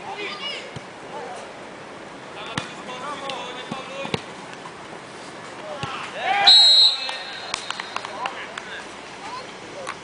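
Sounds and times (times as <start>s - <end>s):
players shouting: 5.7s - 8.5s.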